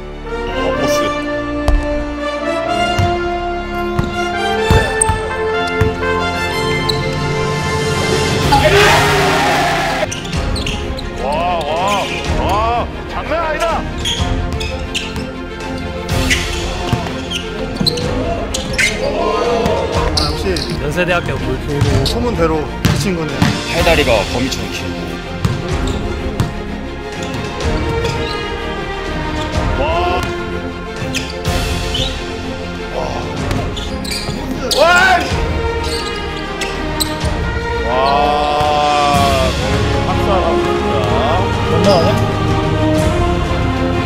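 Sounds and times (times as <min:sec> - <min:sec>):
background music: 0:00.0 - 0:44.0
basketball bouncing on wood floor: 0:04.0 - 0:05.2
excited voices: 0:08.5 - 0:10.1, 0:16.7 - 0:20.8, 0:29.7 - 0:30.3, 0:34.5 - 0:35.3, 0:37.8 - 0:42.4.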